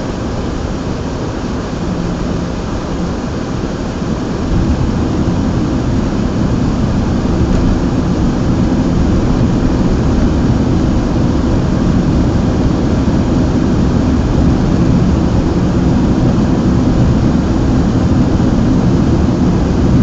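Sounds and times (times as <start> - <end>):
car road and engine rumble: 0.0 - 20.0.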